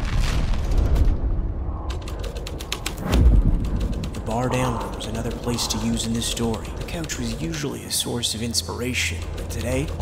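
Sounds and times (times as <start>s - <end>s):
low rumble: 0.0s - 6.9s
sharp mechanical clicks and creaks: 1.9s - 10.0s.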